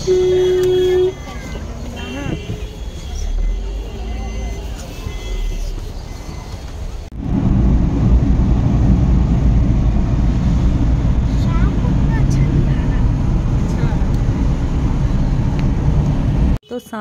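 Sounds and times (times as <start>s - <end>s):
road and wind noise in car: 0.0s - 16.6s.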